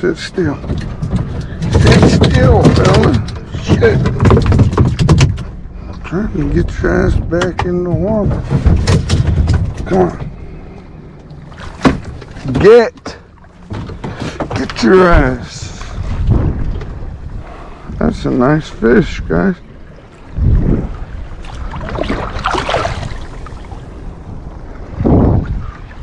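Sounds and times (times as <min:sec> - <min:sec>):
wind buffeting microphone: 0:00.0 - 0:12.8, 0:13.5 - 0:26.0
fish slapping against kayak deck: 0:00.6 - 0:05.5, 0:07.4 - 0:10.0, 0:11.6 - 0:12.7.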